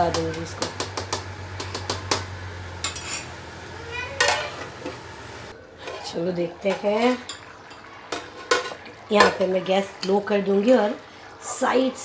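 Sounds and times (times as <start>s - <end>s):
metal plate clanking on pot: 4.2s - 5.0s, 5.8s - 10.2s.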